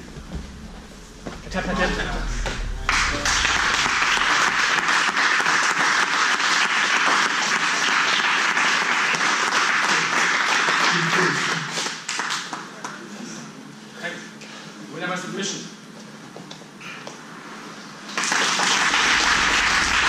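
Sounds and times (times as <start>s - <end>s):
voices: 1.3s - 4.5s
crowd applauding: 2.9s - 13.0s, 18.1s - 20.0s.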